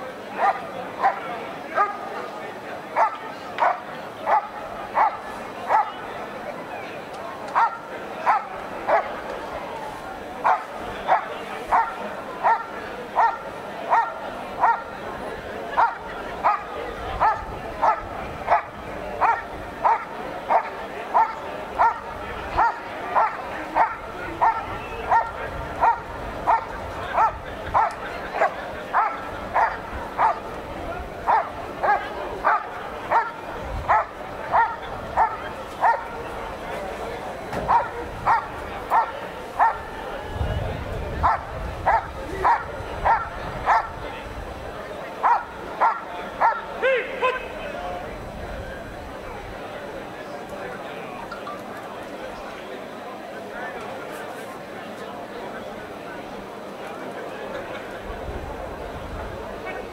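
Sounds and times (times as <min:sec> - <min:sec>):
dog barking: 0:00.4 - 0:01.2, 0:01.8 - 0:02.1, 0:03.0 - 0:06.0, 0:07.6 - 0:09.1, 0:10.4 - 0:14.9, 0:15.8 - 0:30.4, 0:31.3 - 0:36.1, 0:37.7 - 0:39.8, 0:41.2 - 0:44.0, 0:45.2 - 0:46.7.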